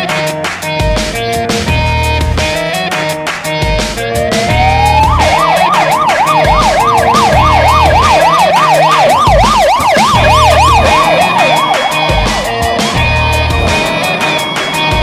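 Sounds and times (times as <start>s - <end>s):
background music with steady beat: 0.0s - 15.0s
emergency vehicle siren: 4.0s - 15.0s.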